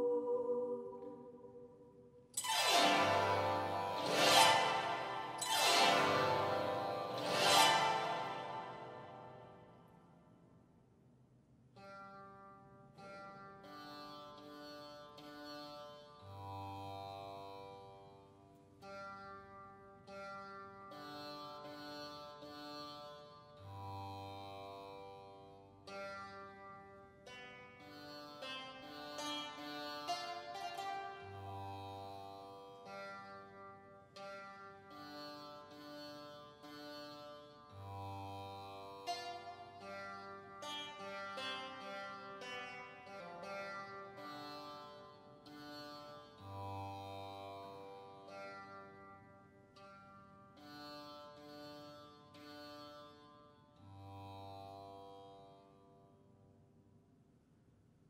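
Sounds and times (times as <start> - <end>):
choral voices: 0.0 - 1.7, 2.9 - 9.4.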